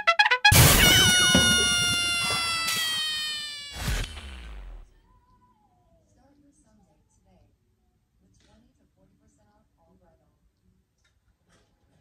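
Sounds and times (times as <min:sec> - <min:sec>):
sharp comedy hit: 0:00.4 - 0:04.6.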